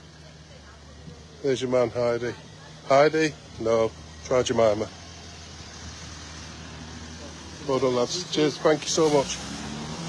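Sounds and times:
faint road noise: 0:00.0 - 0:10.0
vehicle engine humming: 0:00.0 - 0:10.0.

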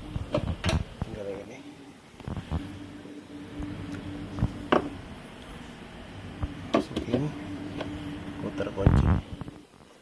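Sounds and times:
low hum: 0:02.3 - 0:09.6.

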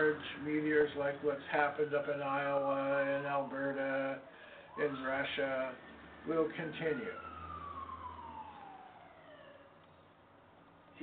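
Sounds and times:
distant siren: 0:00.0 - 0:11.0.

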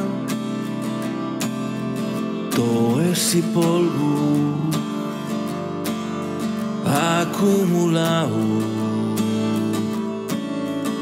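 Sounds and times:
strummed acoustic guitar chords: 0:00.0 - 0:11.0.

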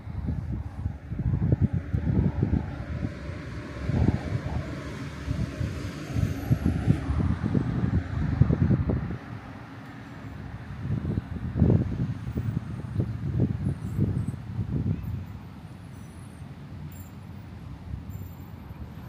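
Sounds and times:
road vehicle passing: 0:00.0 - 0:19.0.

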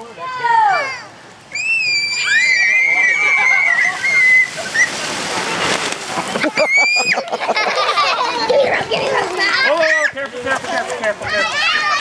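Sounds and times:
water rushing down a waterslide: 0:00.0 - 0:12.0
children squealing: 0:00.7 - 0:05.3, 0:06.4 - 0:07.4, 0:09.3 - 0:10.2.

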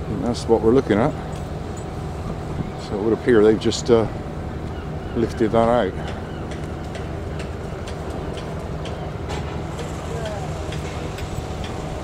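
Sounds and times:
diesel engine droning: 0:07.1 - 0:12.0.

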